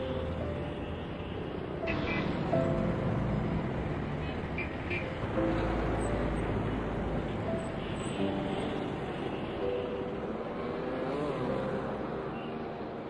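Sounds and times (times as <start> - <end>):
motorcycle and car traffic: 0.0 - 13.0.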